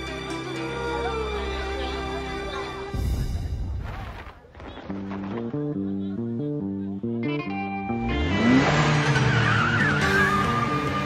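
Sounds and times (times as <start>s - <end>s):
background music: 0.0s - 3.9s, 4.8s - 11.0s
car engine revving: 7.9s - 11.0s.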